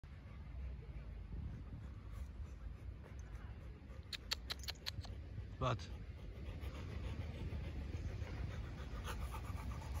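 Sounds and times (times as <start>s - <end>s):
dog panting: 0.1s - 10.0s.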